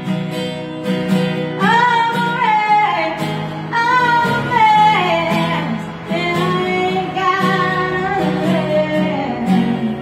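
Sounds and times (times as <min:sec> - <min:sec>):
acoustic guitar strumming: 0:00.0 - 0:10.0
woman singing country song: 0:01.4 - 0:10.0.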